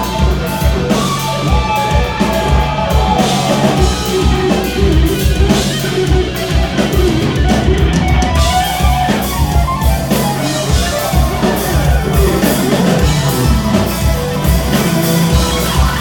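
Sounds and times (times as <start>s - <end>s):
bass guitar: 0.0s - 16.0s
drum kit: 0.0s - 16.0s
electric guitars playing lead lines: 0.0s - 16.0s.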